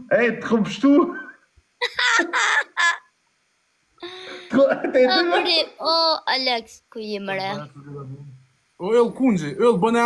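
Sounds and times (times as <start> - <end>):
high-pitched laughter: 1.8 - 3.1, 4.2 - 5.8.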